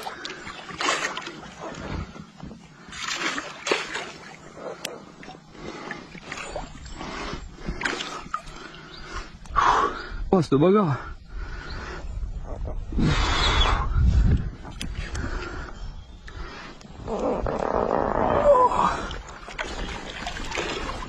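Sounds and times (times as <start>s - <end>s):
fish thrashing water splashing: 0.0s - 1.8s, 2.9s - 4.5s, 7.8s - 8.7s, 19.1s - 21.0s.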